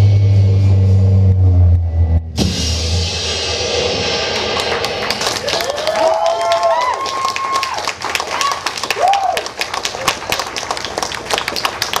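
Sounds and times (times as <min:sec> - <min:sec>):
audience clapping and cheering: 0:04.2 - 0:12.0
person whooping: 0:05.4 - 0:09.5.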